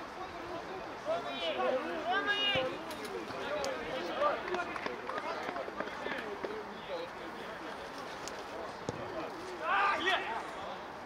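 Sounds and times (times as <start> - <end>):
players shouting calls: 0.0 - 6.5, 8.8 - 10.8.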